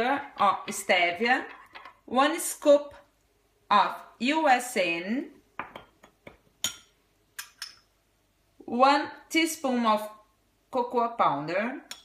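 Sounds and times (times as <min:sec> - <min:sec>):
metal spoon clinking on glass: 0:06.6 - 0:07.9.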